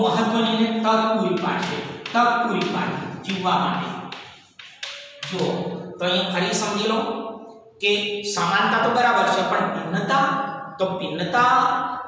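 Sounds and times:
man talking: 0:00.0 - 0:04.2, 0:05.2 - 0:07.2, 0:07.8 - 0:12.0
chalk on blackboard: 0:01.3 - 0:05.6.

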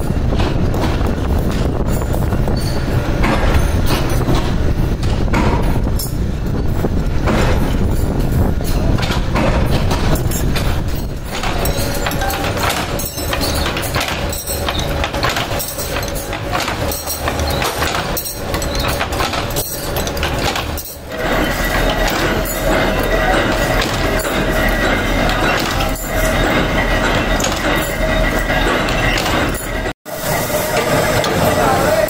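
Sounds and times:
power press knocking: 0:03.1 - 0:32.0.

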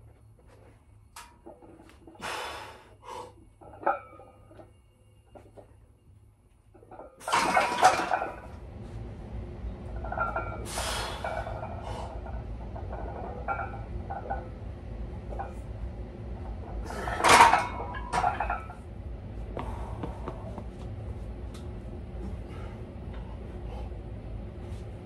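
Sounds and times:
low steady hum: 0:00.0 - 0:25.0
barbell plates clanking: 0:06.8 - 0:08.5, 0:09.9 - 0:14.6, 0:16.7 - 0:18.8
forceful breaths: 0:19.5 - 0:20.6.

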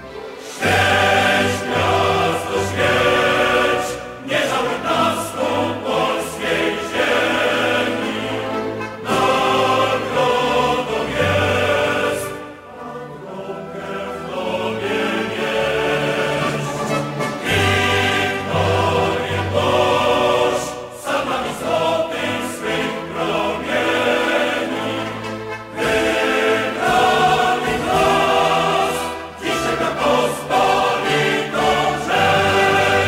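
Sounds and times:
choir singing a march: 0:00.0 - 0:33.0.

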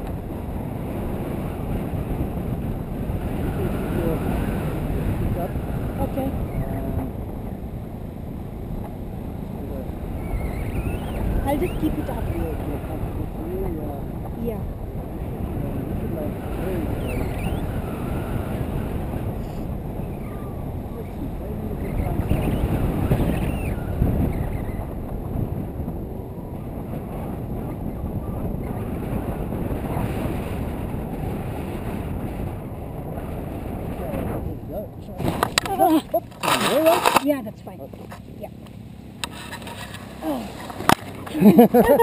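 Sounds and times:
wind buffeting microphone: 0:00.0 - 0:42.0.

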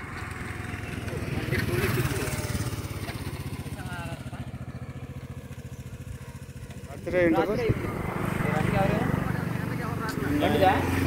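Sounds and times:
small engine puttering: 0:00.0 - 0:11.0.

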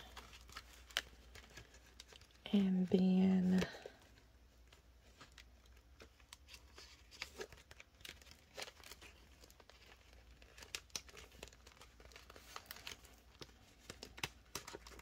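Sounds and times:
plastic binder pocket crackling: 0:00.0 - 0:15.0.

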